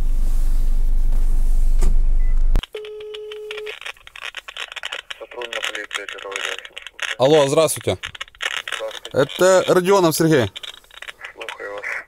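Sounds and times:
vehicle noise humming: 0.0s - 2.6s
faint voices on phone: 11.2s - 12.0s.

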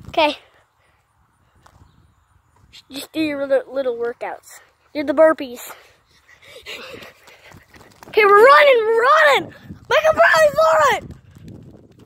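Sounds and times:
child breathing: 5.6s - 8.0s.

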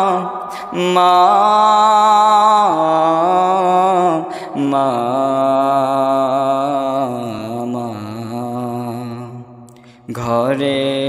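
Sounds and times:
person singing long held notes: 0.0s - 9.5s.

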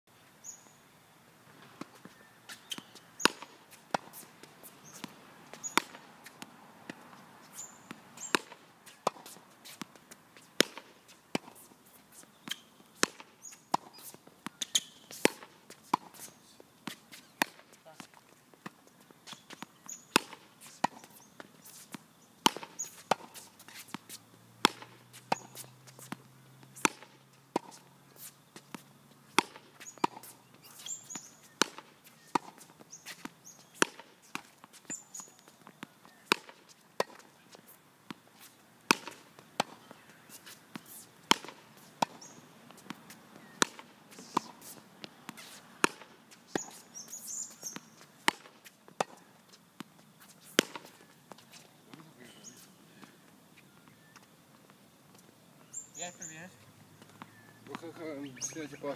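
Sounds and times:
tennis balls struck and bouncing: 1.5s - 58.9s.

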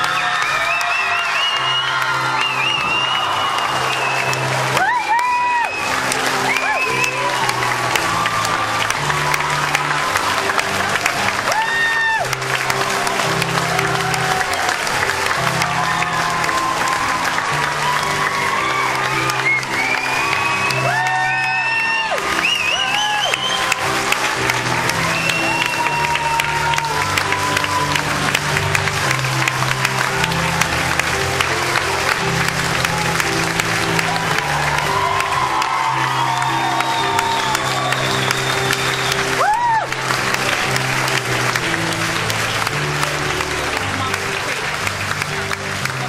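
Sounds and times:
audience applauding: 0.0s - 46.0s
instrumental music: 0.0s - 46.0s
voices cheering: 0.0s - 46.0s.

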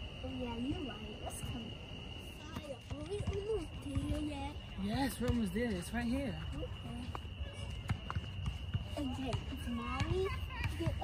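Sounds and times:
footsteps outdoors: 0.0s - 11.0s.

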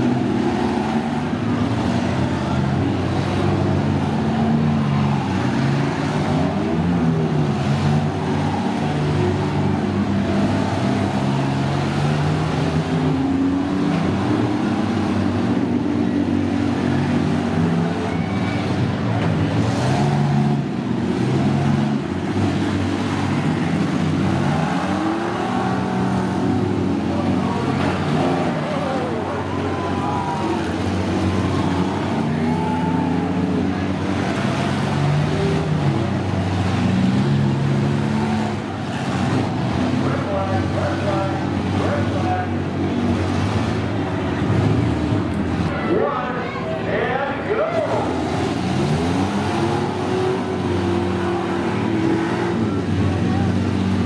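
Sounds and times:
van engines revving: 0.0s - 54.0s.

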